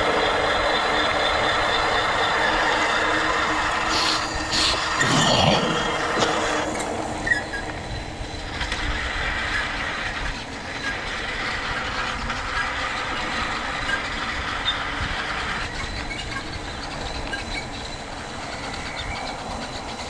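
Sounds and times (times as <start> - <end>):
bike tyres rolling on asphalt: 0.0 - 20.0.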